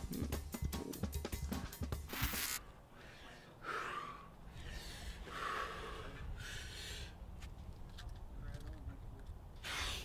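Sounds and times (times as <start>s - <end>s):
person breathing heavily: 2.8s - 7.3s, 9.6s - 10.0s.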